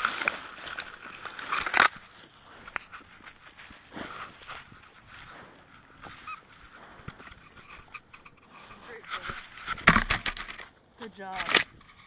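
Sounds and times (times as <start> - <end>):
scuffing and handling noise: 0.0 - 9.8
faint rustling: 0.0 - 12.0.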